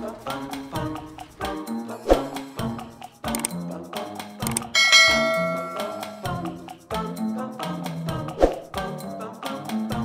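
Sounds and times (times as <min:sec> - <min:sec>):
background music with steady beat: 0:00.0 - 0:10.0
bright bell chime: 0:04.8 - 0:06.4.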